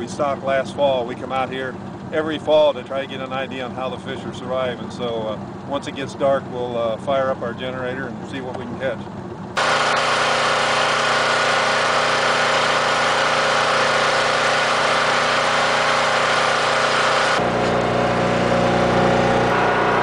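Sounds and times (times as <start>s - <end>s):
generator engine hum: 0.0s - 20.0s.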